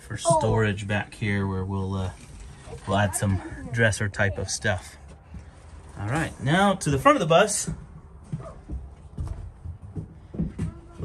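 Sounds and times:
footsteps on bare floor: 7.5s - 11.0s.

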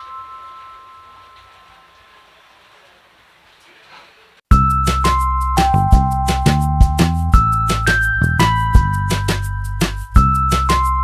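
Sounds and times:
bell-like note ringing: 0.0s - 2.4s, 4.5s - 11.0s.

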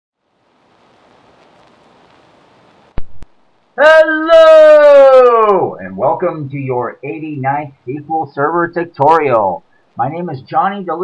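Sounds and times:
faint steady hiss: 0.2s - 11.0s.

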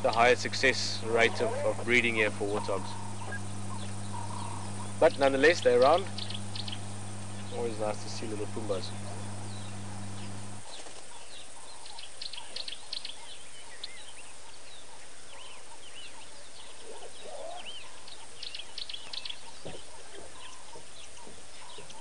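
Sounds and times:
wild birds chirping: 0.0s - 22.0s.

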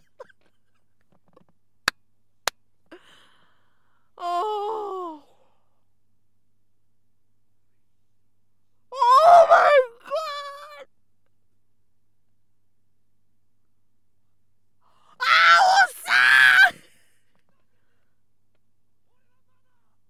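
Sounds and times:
woman moaning: 4.2s - 5.4s.

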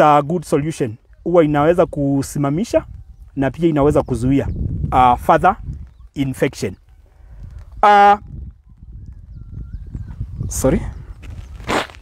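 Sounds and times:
wind rumble: 1.0s - 12.0s
microphone handling noise: 2.8s - 12.0s.

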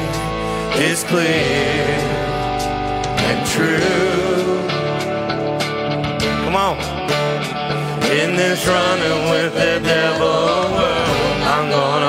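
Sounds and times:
electric guitars: 0.0s - 12.0s
rock band playing: 0.0s - 12.0s.

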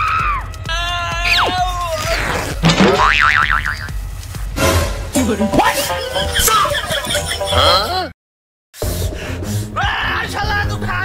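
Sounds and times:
background music: 0.0s - 8.2s, 8.8s - 11.0s
warbling boing sound effect: 2.7s - 3.9s.

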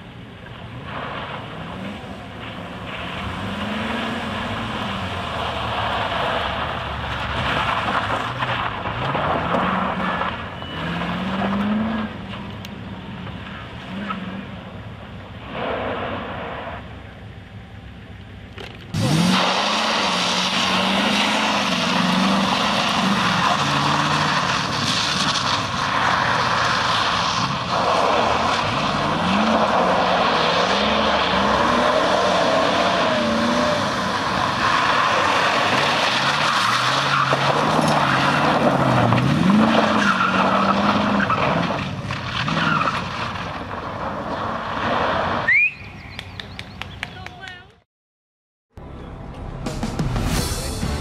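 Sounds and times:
tyres skidding on gravel: 0.4s - 17.0s, 18.5s - 47.6s
car engine revving: 0.7s - 14.7s, 18.9s - 45.4s.

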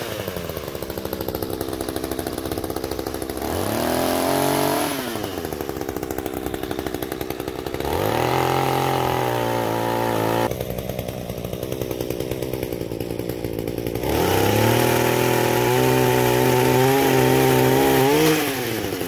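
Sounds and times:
chainsaw idling and revving: 0.0s - 19.0s.

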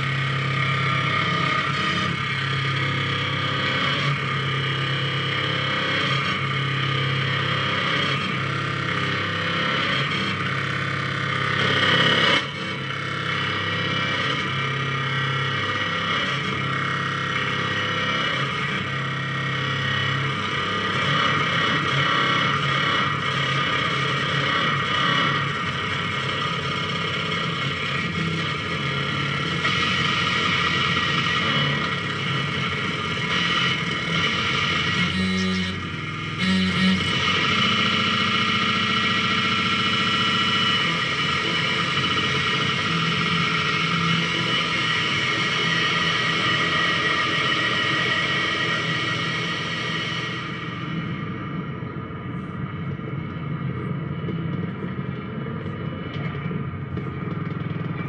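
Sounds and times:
distorted wall of noise: 0.0s - 58.0s
steady low drone: 0.0s - 58.0s.

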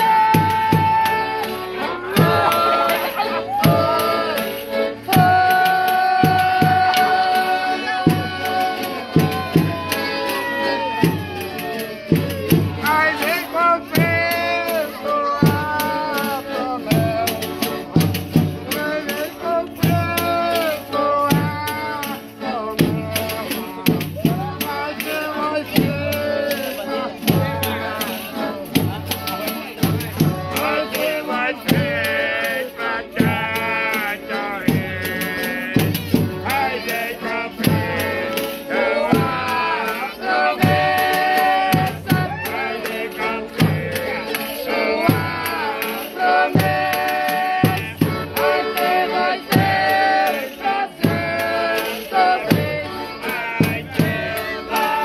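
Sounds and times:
drum beat: 0.0s - 4.4s, 5.0s - 55.0s
accordion: 0.0s - 55.0s
acoustic guitars strummed: 0.0s - 55.0s
people singing high lines: 0.0s - 55.0s.

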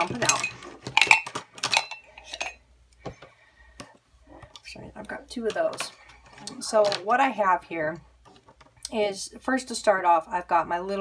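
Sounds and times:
pens and pencils clattering: 0.0s - 3.2s, 5.4s - 7.2s.

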